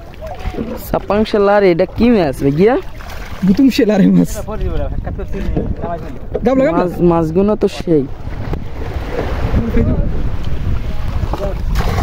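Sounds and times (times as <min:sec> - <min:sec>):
surf rumbling on beach: 0:00.0 - 0:12.0
wind buffeting microphone: 0:00.0 - 0:12.0.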